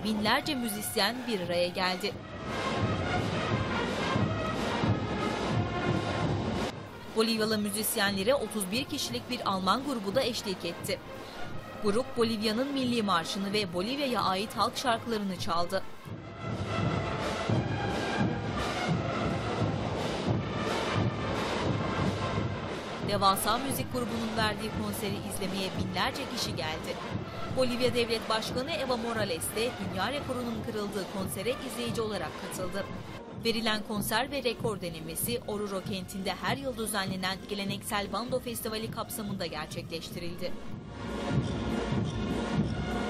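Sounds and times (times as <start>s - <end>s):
marching band playing: 2.2s - 7.1s, 16.0s - 28.6s
bass drums: 16.1s - 28.8s, 40.6s - 43.0s.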